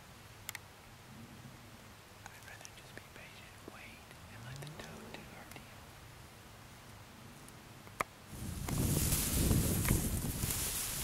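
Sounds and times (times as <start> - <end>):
faint clicks: 2.2 - 3.1, 3.7 - 5.6
man whispering: 2.2 - 5.8.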